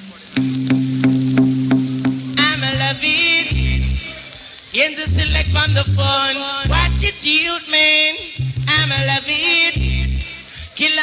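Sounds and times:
reggae instrumental beat: 0:00.0 - 0:11.0
tape hiss and crackle: 0:00.0 - 0:11.0
sharp drum hits: 0:00.4 - 0:03.0
held bass note: 0:00.4 - 0:04.3, 0:05.1 - 0:07.1, 0:08.4 - 0:09.2, 0:09.8 - 0:10.3.

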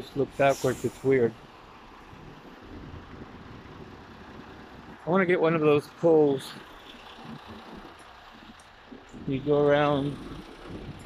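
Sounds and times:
street traffic rumble: 0:00.0 - 0:11.0
vehicle engine running nearby: 0:00.0 - 0:11.0.

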